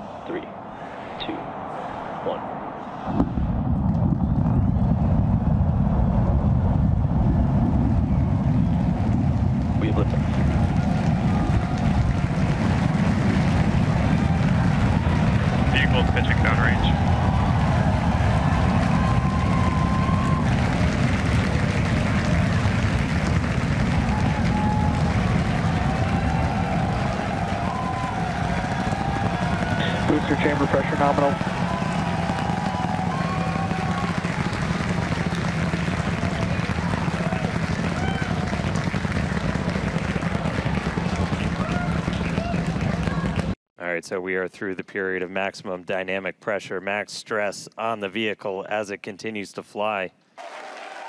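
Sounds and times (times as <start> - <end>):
rocket engines deep rumble: 0.2 - 43.6.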